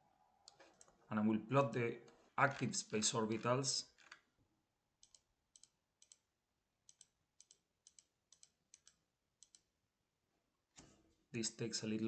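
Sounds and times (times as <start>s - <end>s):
computer mouse clicking: 5.0s - 6.2s, 6.9s - 9.7s.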